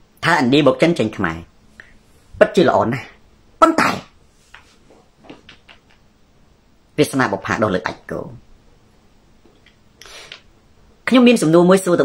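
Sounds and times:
faint small sounds: 0:01.4 - 0:11.0.

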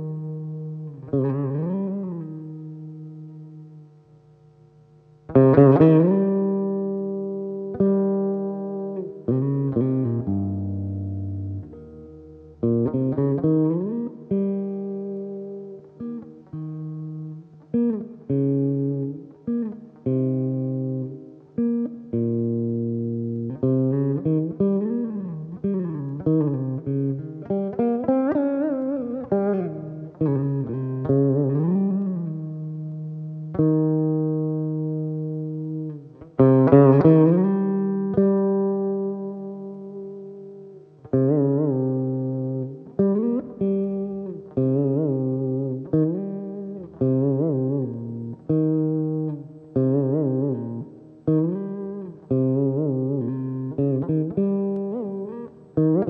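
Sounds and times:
plucked veena notes bending in pitch: 0:05.3 - 0:56.0.

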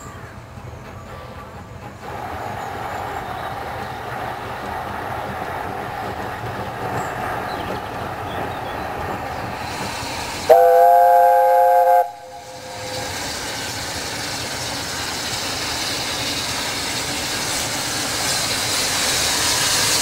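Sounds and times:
steam locomotive hiss and exhaust: 0:00.0 - 0:20.0
steam whistle chord: 0:10.4 - 0:13.2.

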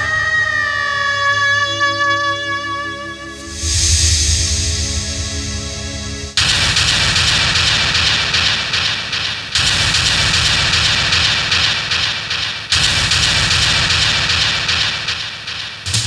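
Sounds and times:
rushing dramatic sound effect: 0:02.6 - 0:06.4
low rumble: 0:03.3 - 0:06.4.

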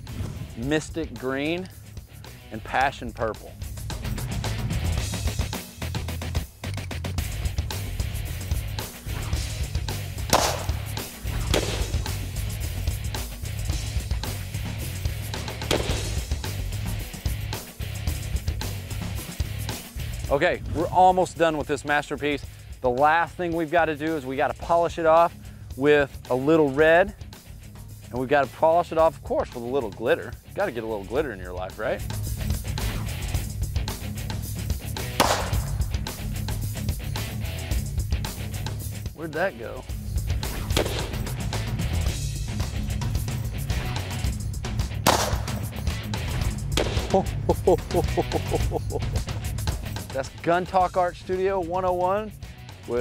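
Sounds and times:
background music with a beat: 0:00.0 - 0:53.0
bullet hitting spray can: 0:10.3 - 0:12.2, 0:15.6 - 0:16.3, 0:35.2 - 0:35.8, 0:40.7 - 0:41.3, 0:45.0 - 0:45.7, 0:46.8 - 0:47.2
gunshot cracks: 0:10.3 - 0:12.2, 0:15.6 - 0:16.2, 0:35.2 - 0:35.7, 0:40.7 - 0:41.2, 0:45.1 - 0:45.6, 0:46.8 - 0:47.2
pistol shot with echo: 0:10.3 - 0:12.2, 0:15.6 - 0:16.2, 0:35.2 - 0:35.8, 0:40.7 - 0:41.2, 0:45.1 - 0:45.6, 0:46.8 - 0:47.2.

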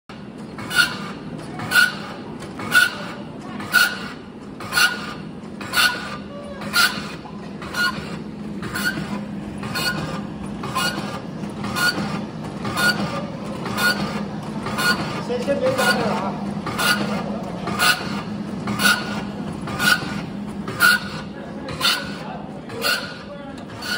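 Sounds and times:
machine humming: 0:00.1 - 0:23.9
sharp regular machine clack: 0:00.1 - 0:23.9.

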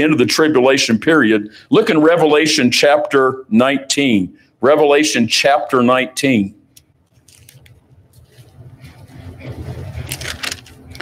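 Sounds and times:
pages rustling: 0:07.1 - 0:11.0.

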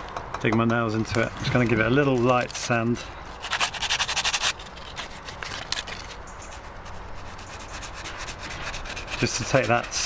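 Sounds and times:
sandpaper rubbing: 0:03.3 - 0:10.0.

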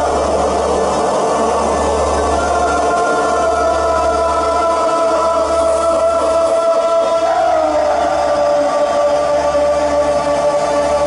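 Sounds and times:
low steady drone: 0:00.0 - 0:11.0
synthesizer pad tones: 0:00.0 - 0:11.0.

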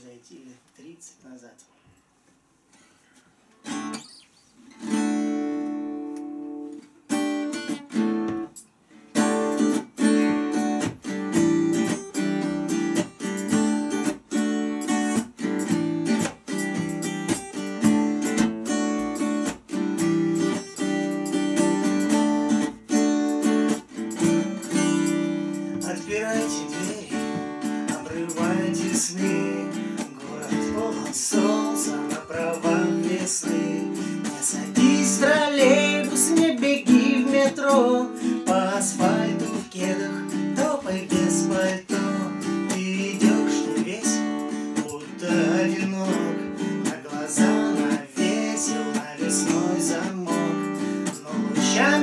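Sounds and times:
acoustic guitar strumming: 0:03.6 - 0:52.0.

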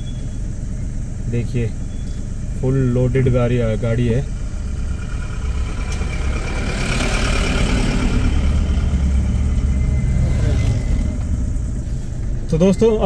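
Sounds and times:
car engine running: 0:00.0 - 0:13.0
truck engine passing by: 0:00.0 - 0:13.0.

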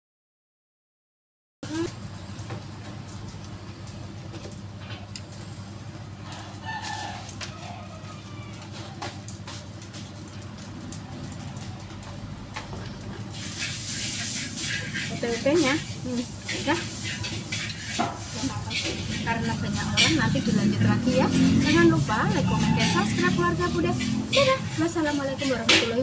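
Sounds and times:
oil sizzling in a wok: 0:01.6 - 0:26.0
utensils clattering: 0:12.8 - 0:26.0.

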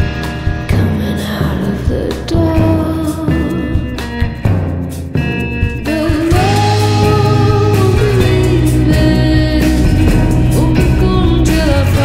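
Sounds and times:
band accompaniment with bass: 0:00.0 - 0:12.0.

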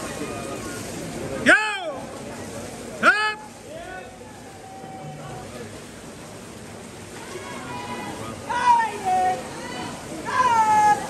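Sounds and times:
crowd noise: 0:00.0 - 0:11.0
swimmers splashing: 0:00.0 - 0:11.0.

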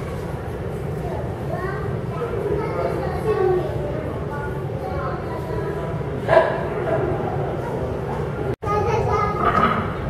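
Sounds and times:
background chatter in hall: 0:00.0 - 0:10.0.

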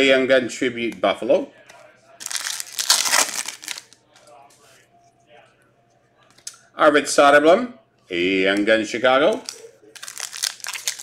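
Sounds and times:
cards rustling: 0:02.2 - 0:04.0, 0:09.4 - 0:11.0
foil wrapper crinkling: 0:02.2 - 0:04.0, 0:09.4 - 0:11.0.

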